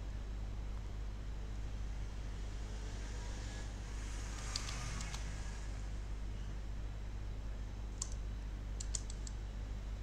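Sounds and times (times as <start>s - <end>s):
low electrical hum: 0.0s - 10.0s
faint clicks: 4.4s - 5.2s, 8.0s - 8.2s, 8.8s - 9.4s.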